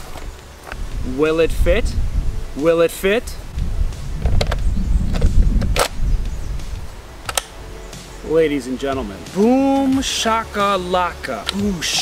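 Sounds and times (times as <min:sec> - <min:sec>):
low rumble: 0:00.8 - 0:02.6, 0:03.2 - 0:07.2
holster click: 0:07.2 - 0:07.6.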